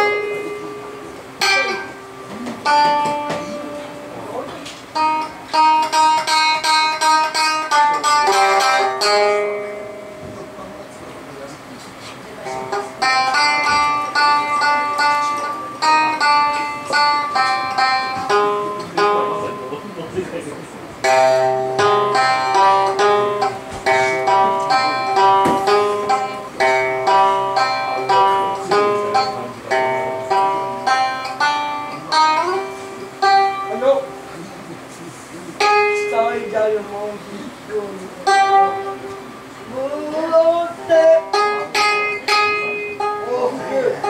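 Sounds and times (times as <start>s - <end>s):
plucked string instrument melody: 0.0s - 44.0s.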